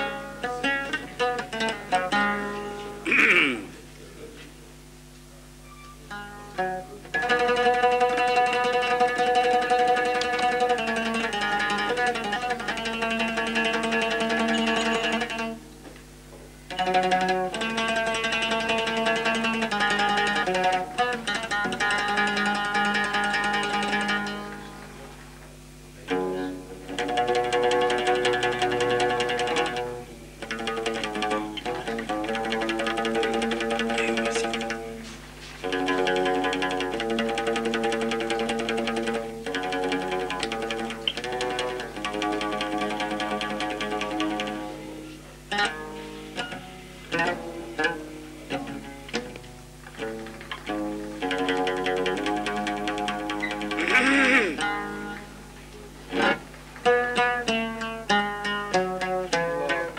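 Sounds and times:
oud playing plucked notes: 0.0s - 59.9s.

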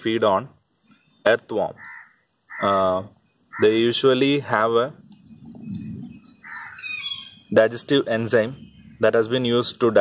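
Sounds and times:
bird calling roughly: 1.0s - 3.9s, 5.0s - 7.6s.

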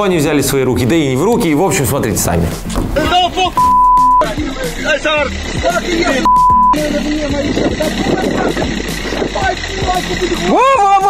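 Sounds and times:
men talking over one another: 0.0s - 11.0s
man shouting loudly: 10.4s - 11.0s.

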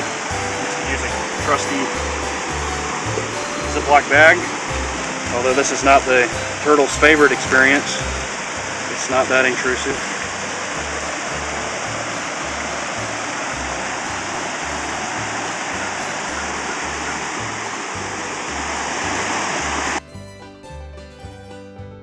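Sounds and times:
background music beat: 0.0s - 8.9s, 20.0s - 22.0s
steady rushing noise: 0.0s - 20.0s.

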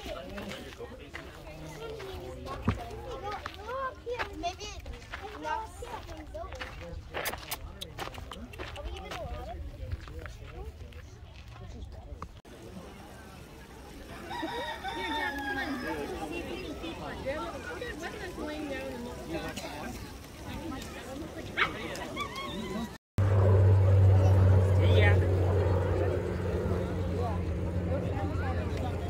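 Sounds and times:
rooster crowing: 14.1s - 16.4s
steady low hum: 23.2s - 29.0s.

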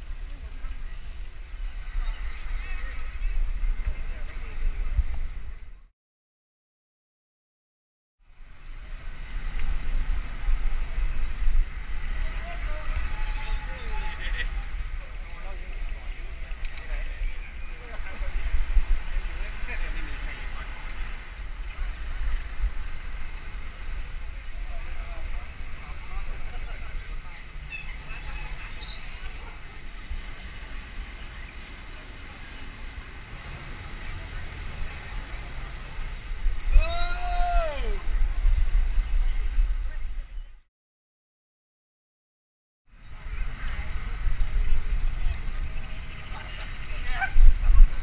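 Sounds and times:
wind rumbling on microphone: 0.0s - 5.9s, 8.2s - 40.7s, 42.9s - 48.0s
indistinct voices talking: 12.0s - 22.5s
loud drawn-out call: 12.8s - 14.7s.

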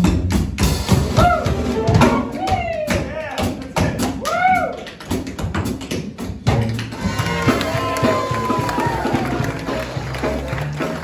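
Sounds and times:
jazz band playing: 0.0s - 11.0s.

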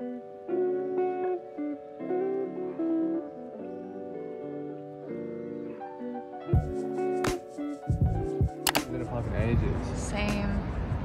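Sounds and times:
chill background music: 0.0s - 11.0s
outdoor noise: 0.0s - 11.0s
sharp double click: 8.6s - 8.9s.

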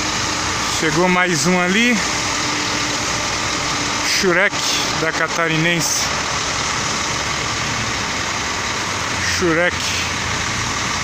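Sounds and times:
bus engine running: 0.0s - 11.0s.

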